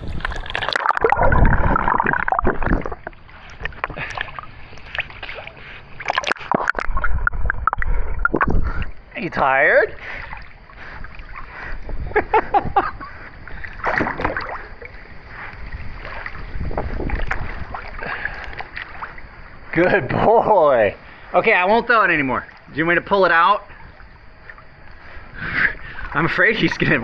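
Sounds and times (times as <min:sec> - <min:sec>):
water splashing and sloshing: 0:00.0 - 0:20.2, 0:21.0 - 0:27.0.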